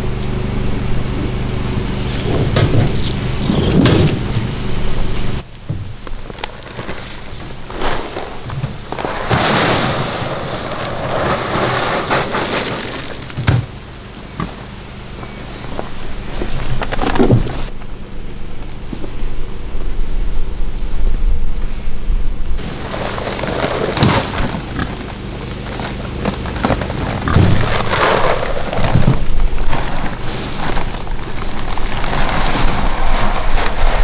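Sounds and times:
steady low hum: 0.0 - 34.0
feed sack rustling: 6.1 - 13.3, 22.6 - 34.0
dry feed pouring into bin: 8.9 - 13.2, 22.6 - 24.8, 26.9 - 34.0.

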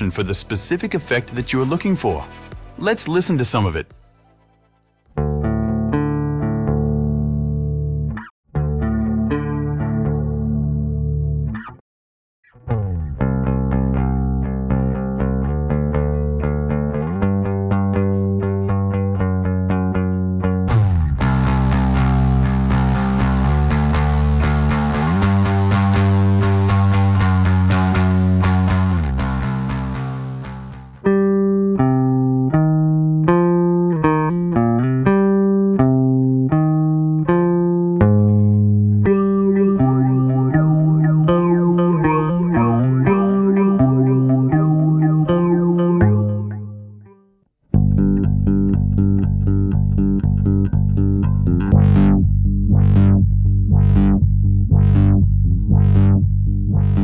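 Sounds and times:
plucked bass notes with reverb: 5.2 - 11.8, 12.4 - 57.0
distorted fuzzy bass line: 39.1 - 46.9, 47.8 - 57.0.

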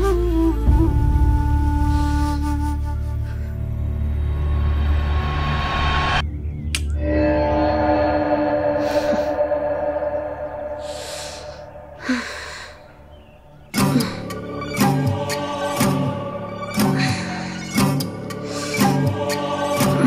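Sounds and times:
slow sustained background music: 0.0 - 20.0.

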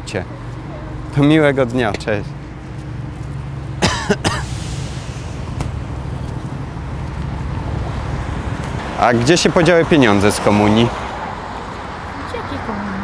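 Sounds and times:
car engines humming: 0.0 - 13.0
car passing: 0.0 - 13.0
cough-like vocal bursts: 3.8 - 4.5.

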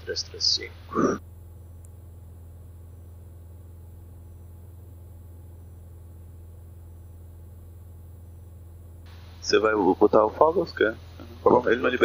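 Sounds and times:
airplane engine and propeller drone: 0.0 - 12.0.

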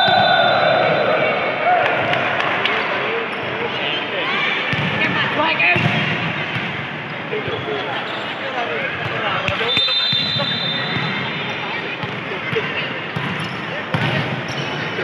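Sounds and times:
players' voices: 0.0 - 15.0
volleyball bouncing on floor: 4.7 - 5.0
short high whistle: 9.7 - 11.0.

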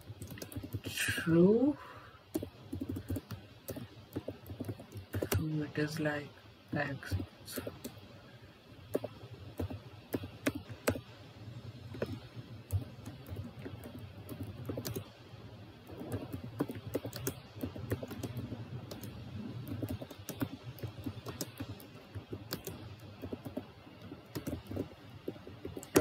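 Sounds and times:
typing on computer keyboard: 0.0 - 0.9, 2.2 - 5.5, 8.8 - 11.1, 11.9 - 15.2, 15.8 - 26.0.

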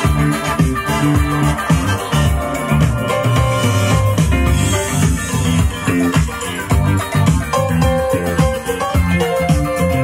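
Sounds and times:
disco music over loudspeakers: 0.0 - 10.0.

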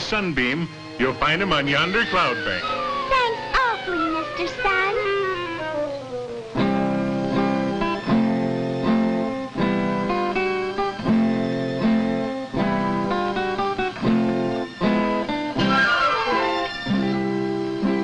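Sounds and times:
banjo strumming chords: 0.0 - 18.0.

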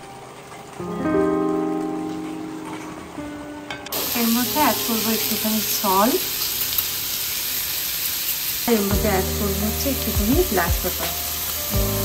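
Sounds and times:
vegetables sizzling in a skillet: 3.9 - 12.0.

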